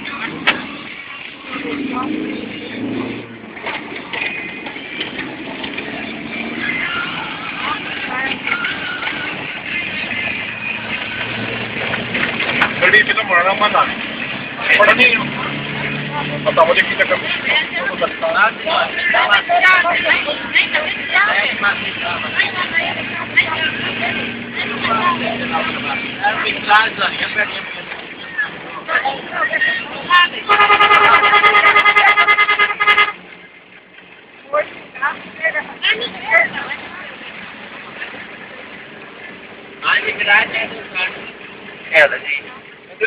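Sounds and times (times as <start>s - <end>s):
van engine hum and road noise: 0.0s - 43.0s
people talking: 6.4s - 10.6s, 12.8s - 13.9s, 14.5s - 33.1s, 34.5s - 37.4s, 39.8s - 43.0s.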